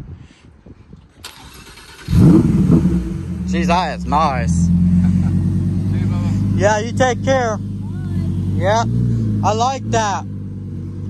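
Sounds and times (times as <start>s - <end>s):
starter motor cranking: 1.2s - 2.5s
car engine starting and revving: 1.2s - 11.0s.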